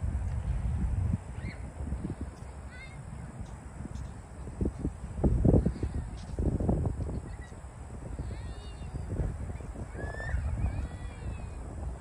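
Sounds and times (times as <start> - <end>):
wind buffeting microphone: 0.0 - 12.0
faint bird calls: 1.4 - 1.7, 8.2 - 11.6.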